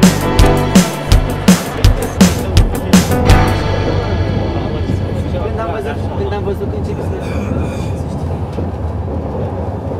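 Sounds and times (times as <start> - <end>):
train carriage rumble: 0.9 - 9.9.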